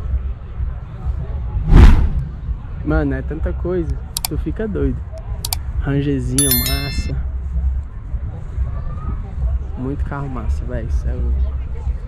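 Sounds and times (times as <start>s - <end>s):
loud whoosh: 1.7s - 2.2s.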